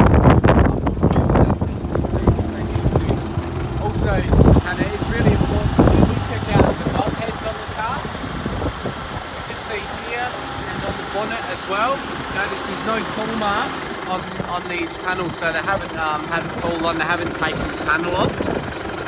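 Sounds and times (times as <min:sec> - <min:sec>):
car engine idling: 0:00.0 - 0:19.0.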